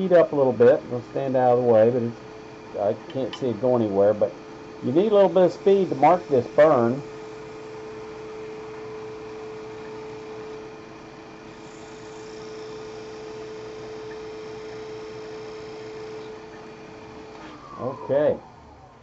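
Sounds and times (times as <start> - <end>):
wood lathe humming: 0.0 - 19.0.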